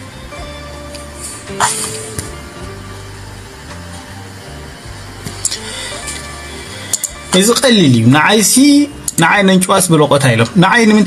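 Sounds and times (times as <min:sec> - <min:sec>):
music with low bass line: 0:00.0 - 0:09.4.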